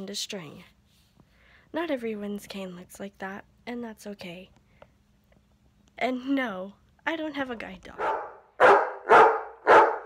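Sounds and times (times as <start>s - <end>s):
dog barking: 8.0s - 10.0s.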